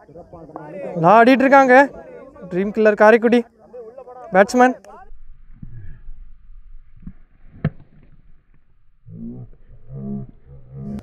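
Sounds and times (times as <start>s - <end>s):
low drawn-out voices: 0.0s - 6.4s
wind rumble on microphone: 5.0s - 11.0s.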